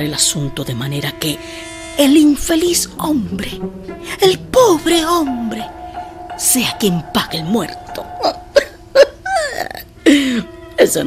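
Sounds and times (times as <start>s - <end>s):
held note of background music: 0.0s - 11.0s
throaty rattle: 3.6s - 9.8s.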